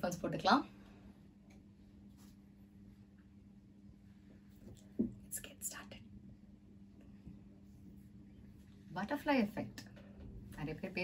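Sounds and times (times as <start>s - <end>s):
soft low thump: 4.9s - 5.3s
person whispering: 5.3s - 6.1s.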